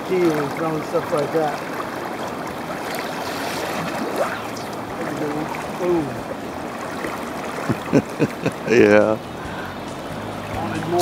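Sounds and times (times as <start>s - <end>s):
flowing river water: 0.0s - 11.0s.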